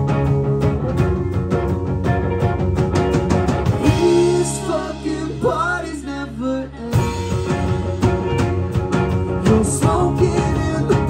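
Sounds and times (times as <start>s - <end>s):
drums: 0.0s - 11.0s
guitars and bass holding chord: 0.0s - 11.0s
rock band playing: 0.0s - 11.0s
person singing: 3.8s - 7.7s, 9.4s - 11.0s.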